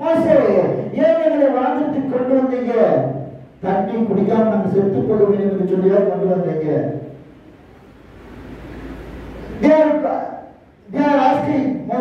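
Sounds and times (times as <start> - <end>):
man speaking into a microphone: 0.0 - 7.2, 9.5 - 12.0.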